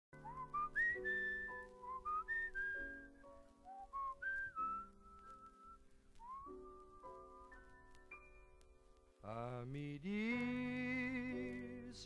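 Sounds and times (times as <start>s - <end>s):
whistled tune: 0.1s - 8.6s.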